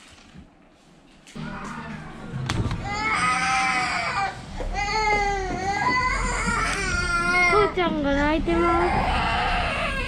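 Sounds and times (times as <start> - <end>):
baby crying: 2.8 - 7.7, 8.5 - 10.0.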